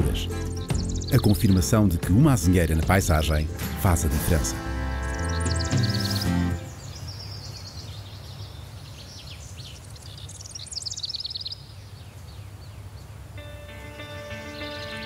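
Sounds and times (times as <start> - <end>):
soft sustained music chords: 0.0 - 6.8, 13.4 - 15.0
birds chirping trills: 0.0 - 15.0.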